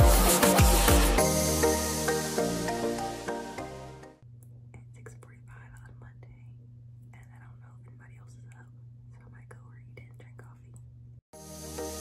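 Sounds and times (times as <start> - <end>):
steady low hum: 4.3 - 11.2.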